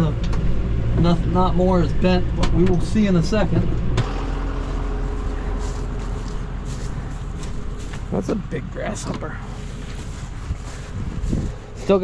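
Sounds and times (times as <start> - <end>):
tractor engine idling: 0.0 - 12.0.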